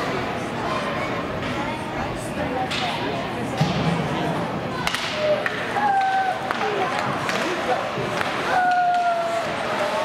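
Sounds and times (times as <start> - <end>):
voices calling in ice rink: 0.0 - 10.0
hockey sticks and puck clacking: 4.8 - 10.0.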